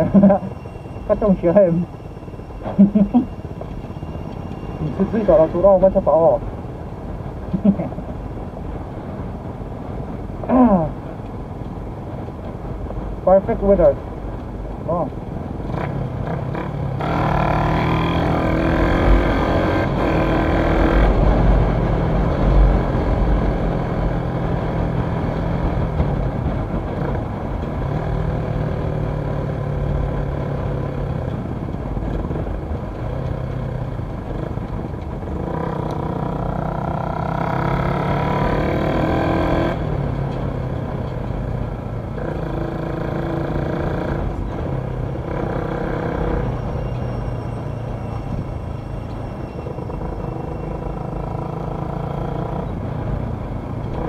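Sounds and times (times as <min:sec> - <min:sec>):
wind rumble on microphone: 0:00.0 - 0:17.1, 0:17.8 - 0:45.5.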